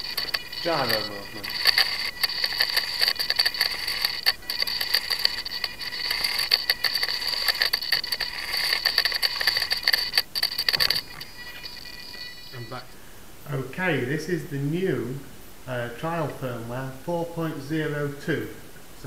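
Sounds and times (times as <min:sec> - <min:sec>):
rapid ticking: 0:00.0 - 0:13.0
servos buzzing and whining: 0:00.0 - 0:13.0.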